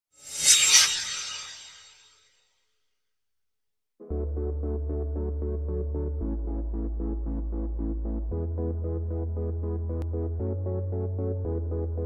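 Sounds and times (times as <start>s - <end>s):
whoosh: 0.2s - 2.2s.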